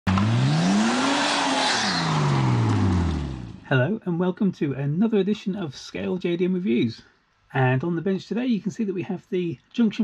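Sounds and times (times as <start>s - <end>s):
car engine revving: 0.0s - 3.7s.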